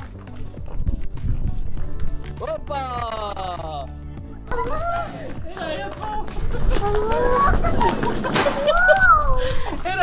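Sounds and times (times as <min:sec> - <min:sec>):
children squealing excitedly: 0:06.8 - 0:09.5.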